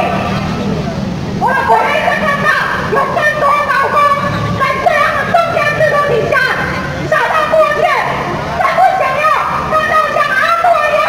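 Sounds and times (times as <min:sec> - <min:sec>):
crowd noise: 0:00.0 - 0:11.0
voice shouting through loudspeaker: 0:01.4 - 0:11.0.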